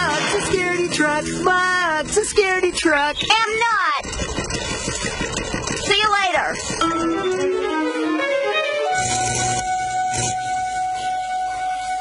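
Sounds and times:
rattling noise: 0.0s - 7.9s.

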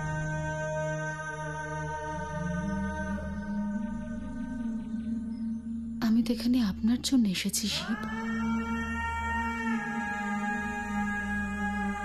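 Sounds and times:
dramatic held tones over low drone: 0.0s - 12.0s.

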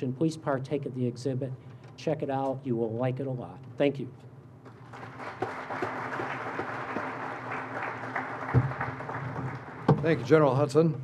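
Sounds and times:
audience applauding: 4.7s - 10.0s.

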